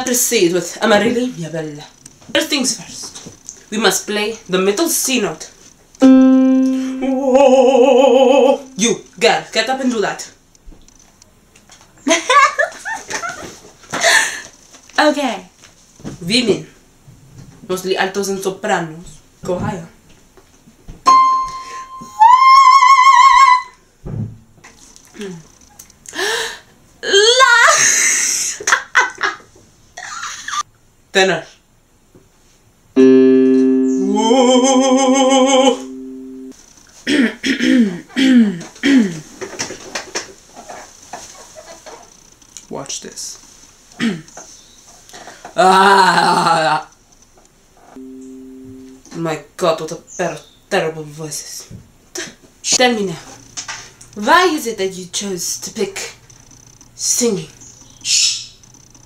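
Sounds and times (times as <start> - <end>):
high keyboard note ringing: 6.0 - 7.8, 8.5 - 8.8, 21.1 - 22.2, 33.0 - 36.5, 48.0 - 49.0
woman singing high note: 6.0 - 8.8, 21.2 - 23.7, 33.0 - 36.5, 48.0 - 49.0.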